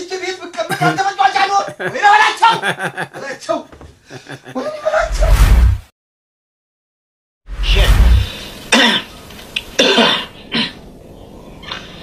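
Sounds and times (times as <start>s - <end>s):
man coughing: 0.7s - 3.4s.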